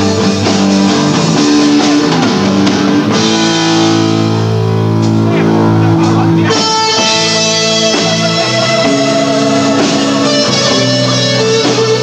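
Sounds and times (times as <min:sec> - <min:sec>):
live rock band: 0:00.0 - 0:12.0.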